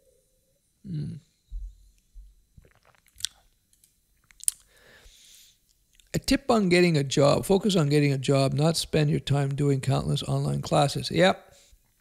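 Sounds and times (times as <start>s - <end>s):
wet mouth sounds: 2.6s - 3.5s, 4.2s - 4.8s
tongue clicks: 2.6s - 4.8s.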